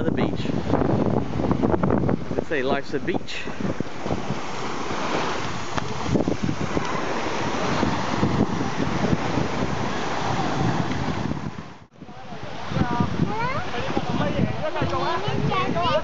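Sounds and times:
wind buffeting microphone: 0:00.0 - 0:16.0
small waves breaking on shore: 0:00.1 - 0:16.0.

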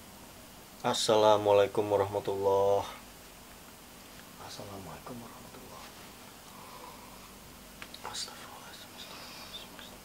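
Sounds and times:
quiet whispering: 0:07.9 - 0:10.0.

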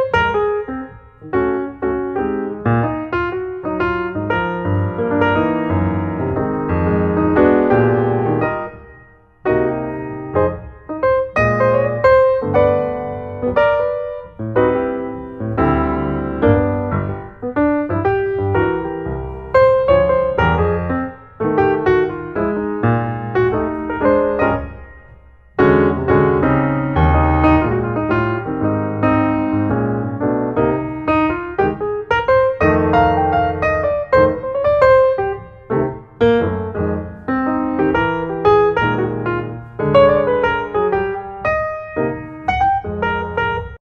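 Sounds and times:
background piano music: 0:00.0 - 0:43.8.

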